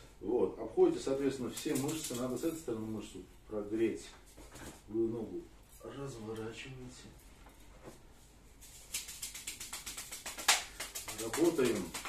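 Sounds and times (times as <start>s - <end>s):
massage sticks beating on thigh: 9.1s - 12.0s.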